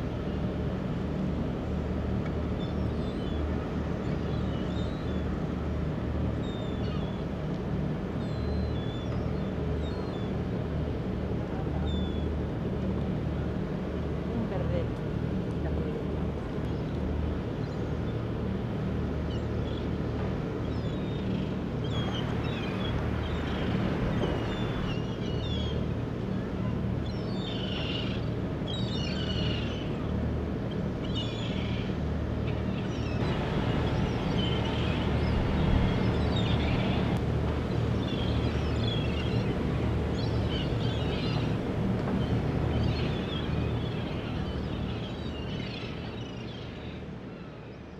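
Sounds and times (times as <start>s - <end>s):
boat engine hum: 0.0s - 47.9s
birds calling: 20.6s - 26.0s, 26.9s - 47.9s.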